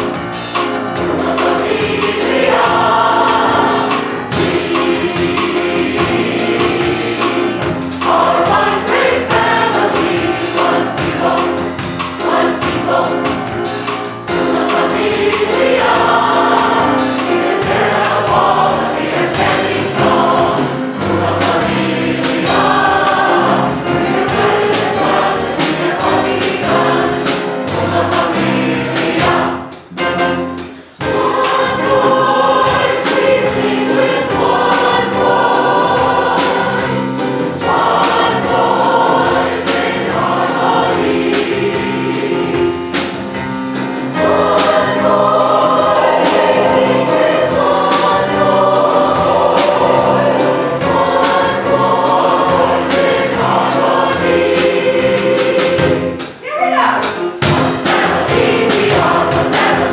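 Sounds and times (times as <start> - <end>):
drum kit: 0.0 - 59.9
mixed choir singing in harmony: 0.0 - 59.9
piano: 0.0 - 59.9.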